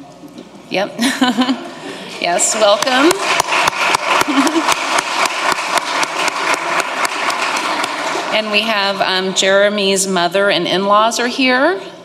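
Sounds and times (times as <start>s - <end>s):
audience applauding: 2.2s - 8.9s.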